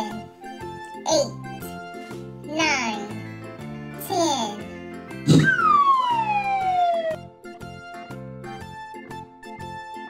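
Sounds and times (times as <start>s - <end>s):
light background music: 0.0s - 10.0s
cartoon poof: 5.2s - 7.2s
descending whistling tone: 5.3s - 7.3s.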